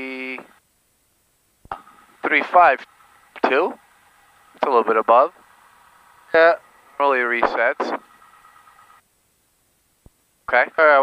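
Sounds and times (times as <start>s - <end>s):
high-pitched intercom whine: 4.5s - 5.5s, 6.3s - 9.0s.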